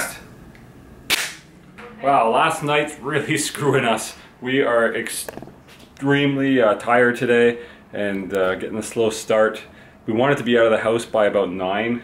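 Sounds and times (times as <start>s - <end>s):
sharp crack with ring: 1.1s - 1.5s.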